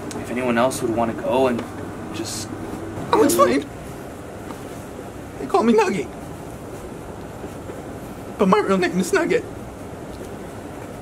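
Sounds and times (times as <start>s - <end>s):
low rumbling hiss: 0.0s - 11.0s.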